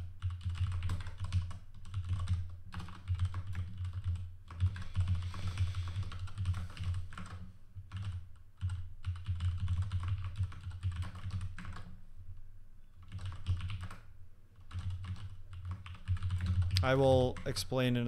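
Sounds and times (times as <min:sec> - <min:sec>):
typing on keyboard: 0:00.0 - 0:12.0, 0:13.0 - 0:17.6.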